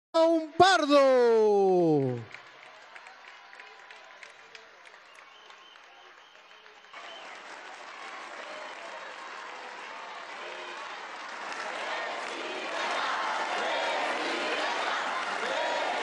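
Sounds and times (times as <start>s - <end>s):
audience applauding: 1.9s - 16.0s.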